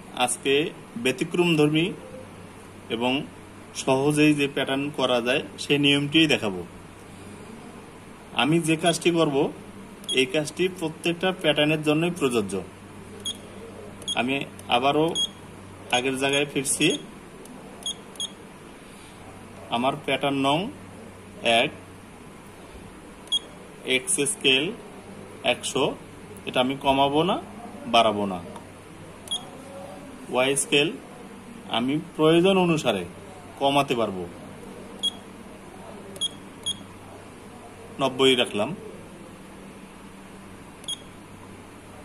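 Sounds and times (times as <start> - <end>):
steady low hum: 0.0 - 42.0
short beeps: 13.2 - 14.2, 15.1 - 15.4, 29.3 - 29.5, 35.0 - 35.2, 36.2 - 36.9, 40.8 - 41.2.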